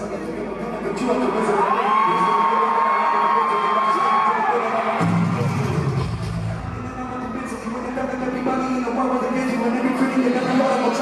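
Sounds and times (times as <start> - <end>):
audience cheering: 1.1 - 11.0.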